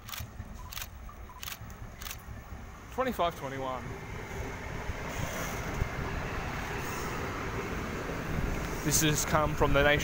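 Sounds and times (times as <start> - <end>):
diesel train engine: 0.0 - 10.0
train wheels on rails: 0.0 - 10.0.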